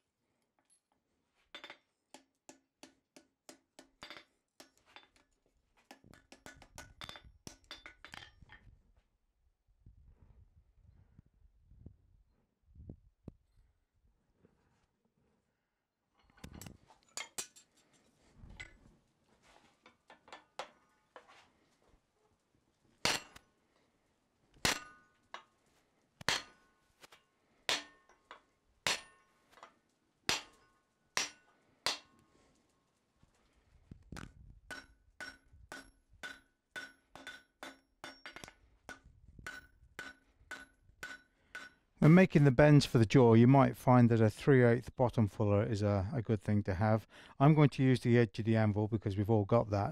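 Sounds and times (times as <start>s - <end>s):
hammer striking steel on anvil: 1.6s - 5.3s, 5.9s - 8.3s, 23.0s - 23.4s, 24.6s - 25.5s, 26.2s - 26.8s, 27.7s - 29.7s, 30.3s - 32.2s, 34.7s - 41.9s.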